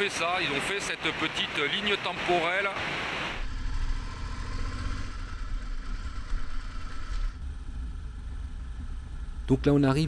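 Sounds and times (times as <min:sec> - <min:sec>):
motorcycle engine rumbling: 0:03.4 - 0:10.0.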